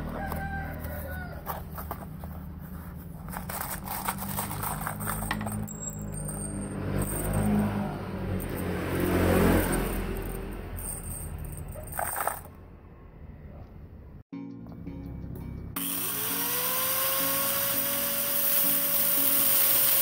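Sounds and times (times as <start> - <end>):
nails clinking and rattling: 3.3 - 12.6.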